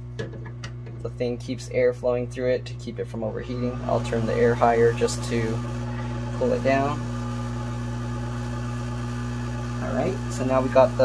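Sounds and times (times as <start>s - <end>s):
blower hum and air rush: 0.0s - 11.0s.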